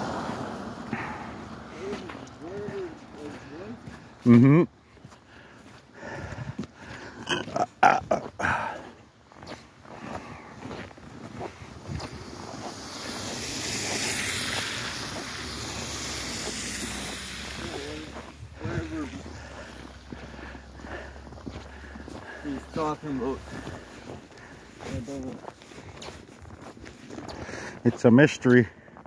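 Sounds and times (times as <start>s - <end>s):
car tyres hissing on slush: 0.0s - 4.2s, 9.7s - 28.7s
footsteps crunching on snow: 0.0s - 29.0s.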